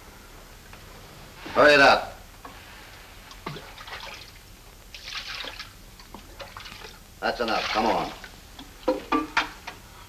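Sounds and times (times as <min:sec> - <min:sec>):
water splashing in a barrel: 0:03.4 - 0:08.4.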